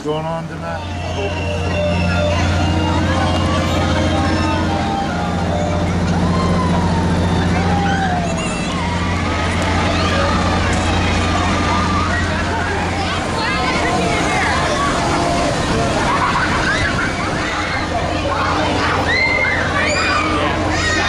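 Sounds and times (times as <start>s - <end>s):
crowd voices and shouts: 0.0s - 21.0s
ride machine hum: 0.0s - 21.0s.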